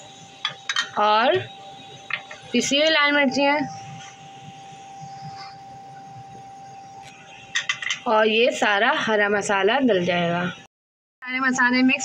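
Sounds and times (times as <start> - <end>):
thin high steady tone: 0.0 - 10.7.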